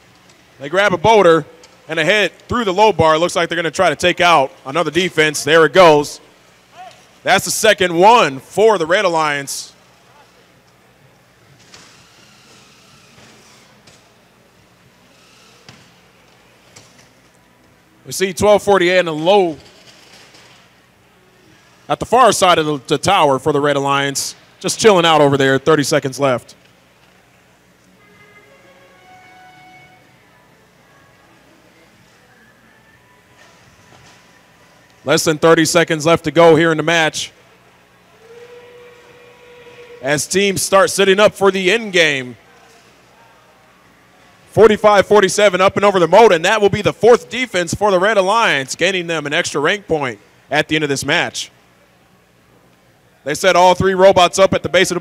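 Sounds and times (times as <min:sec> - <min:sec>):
faint steady whine: 0:00.0 - 0:55.0
low background noise: 0:00.0 - 0:55.0
room noise: 0:00.0 - 0:55.0.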